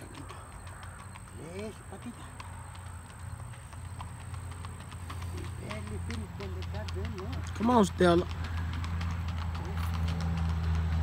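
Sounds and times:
horse hooves on pavement: 0:00.0 - 0:11.0.

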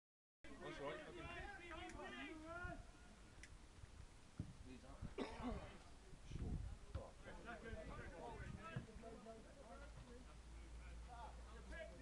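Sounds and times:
faint low thud: 0:04.4 - 0:04.6, 0:08.6 - 0:09.0.

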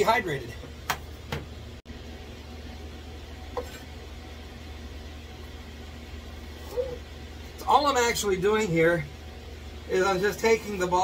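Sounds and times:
fans humming: 0:00.0 - 0:11.0.

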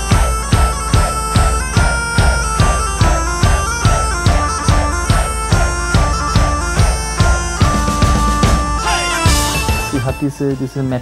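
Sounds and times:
steady drum beat: 0:00.0 - 0:10.7
bagpipes playing melody: 0:00.0 - 0:11.0.

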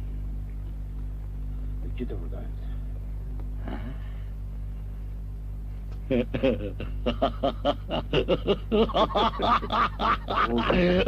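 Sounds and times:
man laughing: 0:06.0 - 0:11.0.

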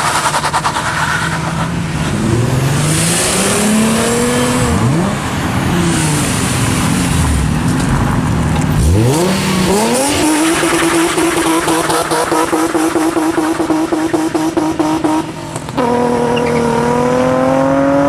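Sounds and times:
car engines revving hard: 0:00.0 - 0:18.0.

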